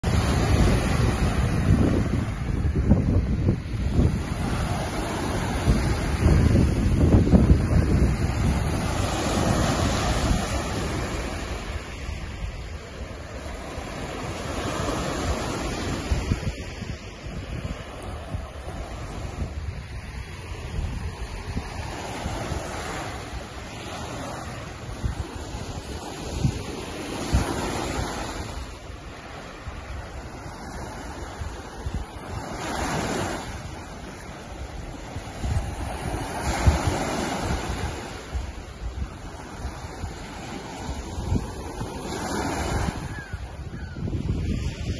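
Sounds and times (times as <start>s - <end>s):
waves washing up a pebble beach: 0.0s - 44.9s
wind buffeting microphone: 0.0s - 44.9s.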